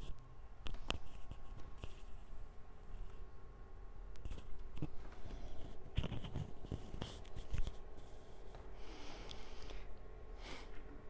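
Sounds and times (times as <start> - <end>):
microphone scratchy rubbing: 4.2 - 8.1.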